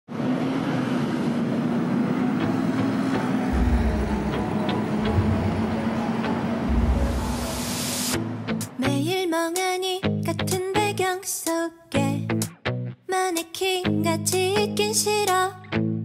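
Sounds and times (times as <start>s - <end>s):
traffic engine hum: 0.1s - 8.8s
rising whoosh: 2.4s - 8.8s
deep booms: 3.5s - 8.7s.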